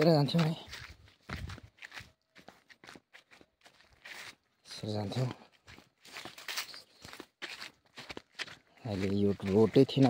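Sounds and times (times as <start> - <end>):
person speaking: 0.0 - 1.0, 4.6 - 5.6, 8.8 - 10.0
footsteps on dirt path: 0.0 - 10.0.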